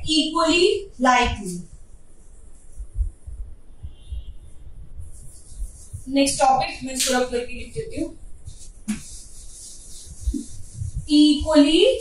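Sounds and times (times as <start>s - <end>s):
eraser rubbing on whiteboard: 5.1s - 12.0s.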